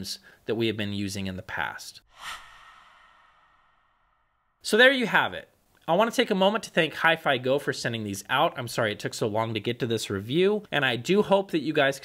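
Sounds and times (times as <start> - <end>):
soft breathy whoosh: 2.1 - 4.6.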